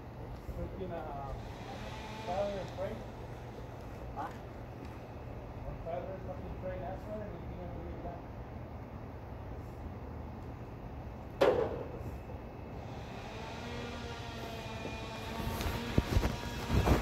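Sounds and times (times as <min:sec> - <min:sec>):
sharp bang: 0:11.4 - 0:12.1.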